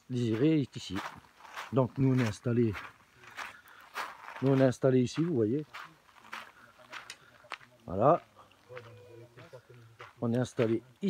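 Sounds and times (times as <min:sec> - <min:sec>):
footsteps crunching on gravel: 0:00.0 - 0:10.9.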